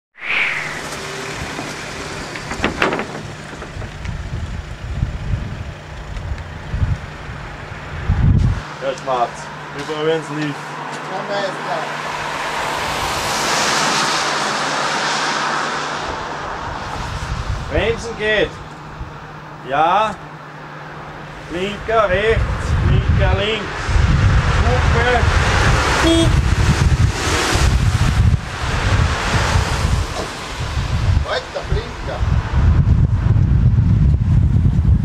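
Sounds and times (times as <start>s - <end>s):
wind buffeting microphone: 0.2s - 8.7s, 16.0s - 19.5s, 21.2s - 35.0s
vehicle passing: 6.6s - 32.6s.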